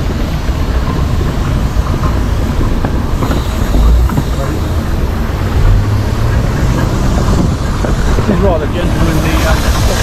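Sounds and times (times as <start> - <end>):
steam traction engine rumbling: 0.0 - 10.0.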